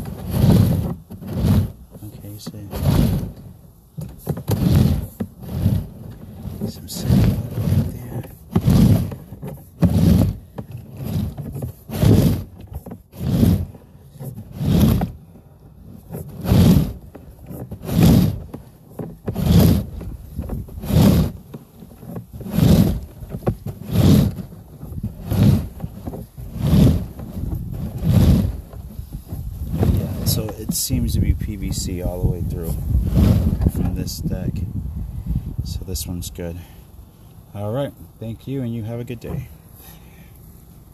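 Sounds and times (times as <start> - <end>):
push rod rasping in pipe: 0.0 - 15.2, 15.8 - 34.3.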